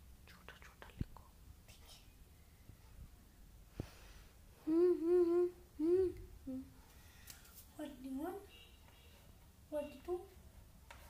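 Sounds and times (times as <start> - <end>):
boy humming: 4.6 - 6.8.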